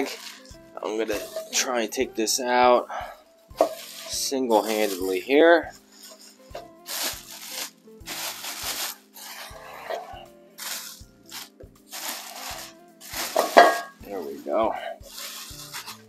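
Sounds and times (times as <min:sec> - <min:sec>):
plastic bag crinkling: 0:00.0 - 0:02.0, 0:03.6 - 0:16.0.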